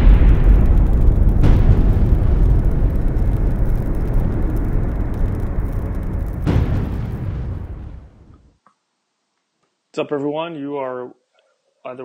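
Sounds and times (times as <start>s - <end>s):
deep rumble of a heavy boom: 0.0s - 8.5s.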